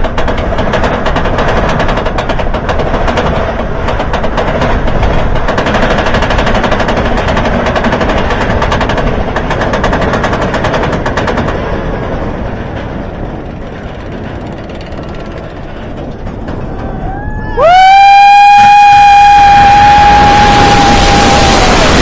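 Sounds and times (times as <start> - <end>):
roller coaster lift chain clicking: 0.0 - 17.6.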